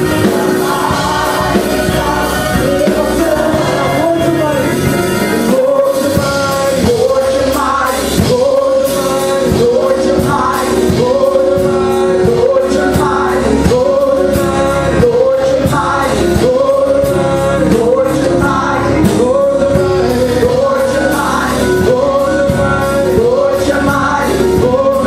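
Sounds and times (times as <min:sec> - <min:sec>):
steady beat: 0:00.0 - 0:17.2
electric keyboard: 0:00.0 - 0:25.0
group singing gospel: 0:00.0 - 0:25.0.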